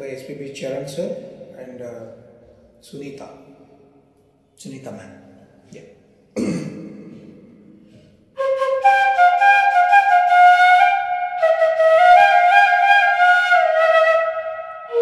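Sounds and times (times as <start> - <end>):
short cough-like noise: 6.4 - 7.4
bamboo flute melody: 8.4 - 15.0.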